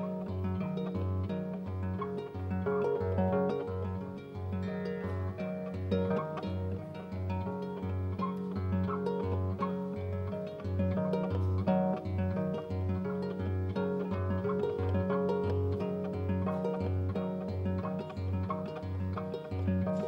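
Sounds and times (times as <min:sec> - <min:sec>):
harp being plucked: 0:00.0 - 0:20.0.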